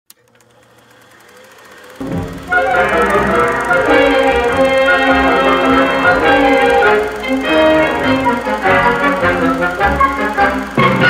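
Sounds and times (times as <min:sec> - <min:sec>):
film projector clattering: 0:00.1 - 0:11.0
projector click: 0:00.1 - 0:11.0
low hum: 0:00.2 - 0:11.0.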